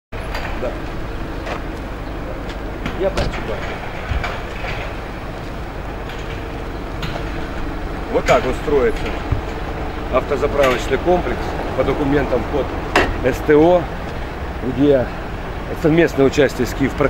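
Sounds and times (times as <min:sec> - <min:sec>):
truck engine running: 0:00.1 - 0:17.0
crane knocks and clanks: 0:00.2 - 0:17.0.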